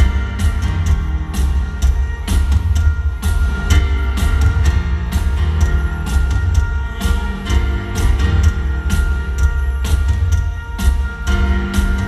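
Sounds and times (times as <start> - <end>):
bass: 0.0 - 12.0
drum kit beat: 0.0 - 12.0
piano: 0.0 - 12.0.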